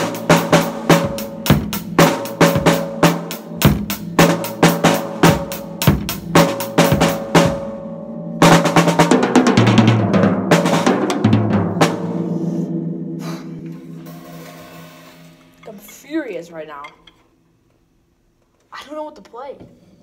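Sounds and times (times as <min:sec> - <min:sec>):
drum kit played with sticks: 0:00.0 - 0:16.1.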